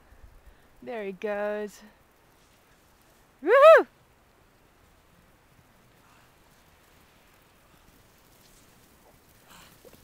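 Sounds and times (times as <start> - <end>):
faint even hiss: 0.0 - 10.0.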